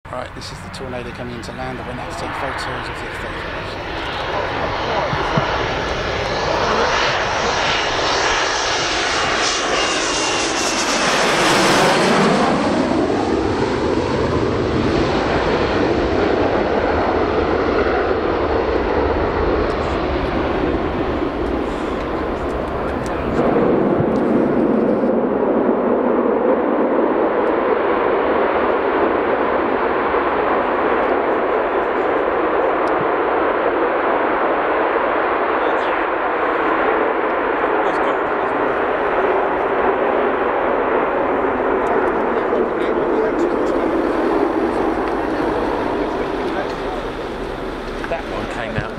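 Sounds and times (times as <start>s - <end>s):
jet engines landing: 0.1s - 48.9s.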